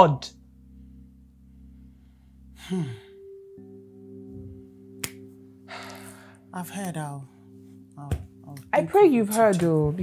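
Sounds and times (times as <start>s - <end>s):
soft background music chords: 0.0s - 10.0s.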